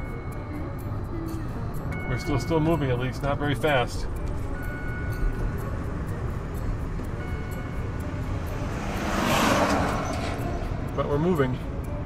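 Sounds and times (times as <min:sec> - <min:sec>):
car road and cabin noise: 0:00.0 - 0:12.0.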